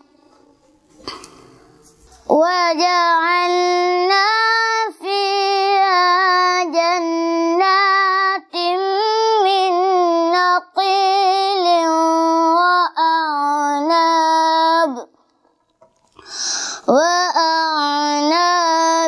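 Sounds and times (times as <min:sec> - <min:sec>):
boy chanting melodically: 0:00.0 - 0:15.2, 0:16.7 - 0:19.0.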